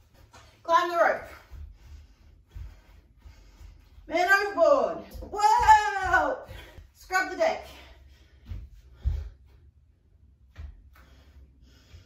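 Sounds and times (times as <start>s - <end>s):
feet thudding on wooden floor: 1.2s - 7.1s, 8.3s - 9.6s
woman calling out: 4.1s - 7.8s.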